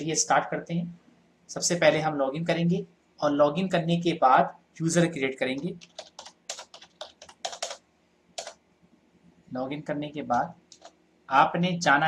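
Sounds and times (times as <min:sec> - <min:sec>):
keyboard keystrokes: 0:05.8 - 0:07.8, 0:10.7 - 0:11.0.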